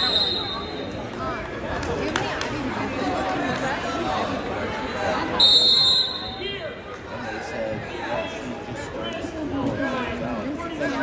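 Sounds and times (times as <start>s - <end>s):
crowd voices in a gym: 0.0s - 11.0s.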